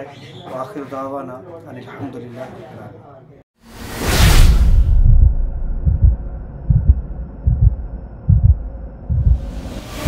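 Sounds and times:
heartbeat thumps: 4.8s - 9.6s.

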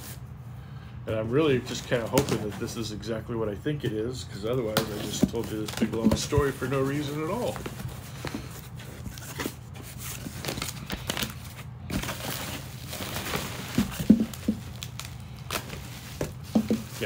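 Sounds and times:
packaging crinkling and rustling: 4.4s - 17.0s
handling knocks: 13.7s - 14.7s, 16.2s - 17.0s.

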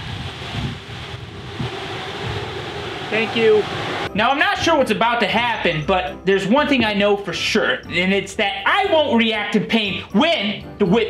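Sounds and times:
wind blowing across microphone: 0.0s - 4.1s.

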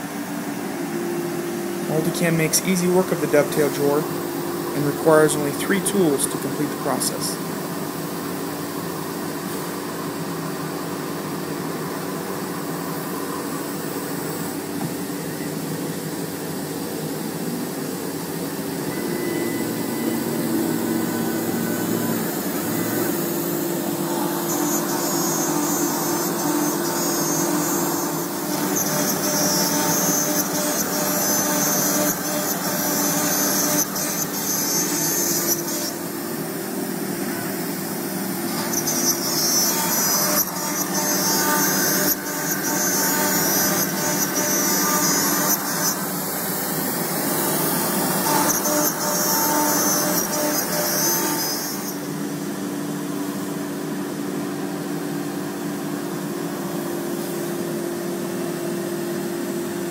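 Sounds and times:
router spindle whine: 0.0s - 59.9s.

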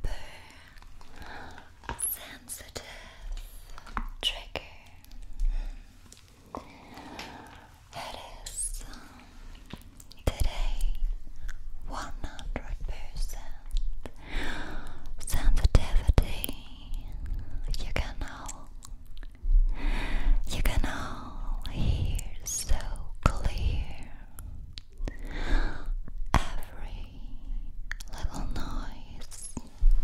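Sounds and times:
breathy whispering: 0.0s - 5.9s, 6.6s - 18.8s, 19.8s - 29.8s.

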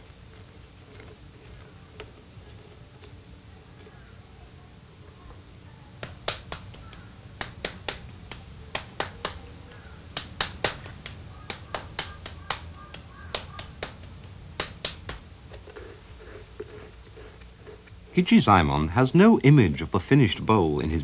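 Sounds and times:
hands patting clay: 6.0s - 17.4s.

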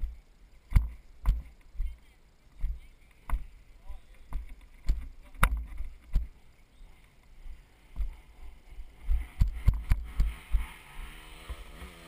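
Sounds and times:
footsteps on dirt and rock: 0.0s - 11.6s.

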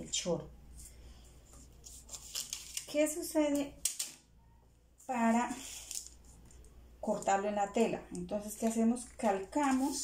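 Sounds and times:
paper rustling and crinkling: 1.5s - 3.1s.

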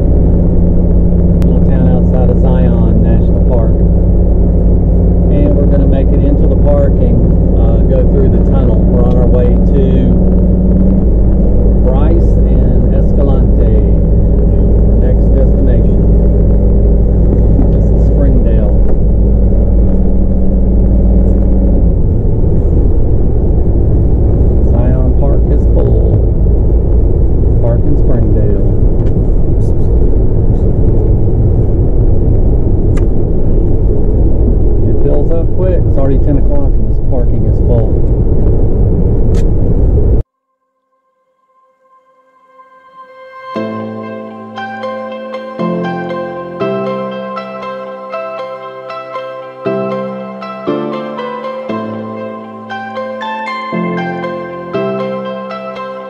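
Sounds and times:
vehicle engine and road rumble: 0.0s - 40.3s, 43.6s - 56.0s.

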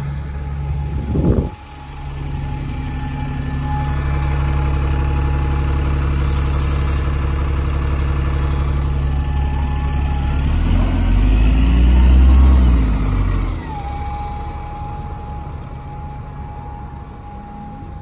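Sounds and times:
diesel bus engine revving: 0.0s - 17.3s.

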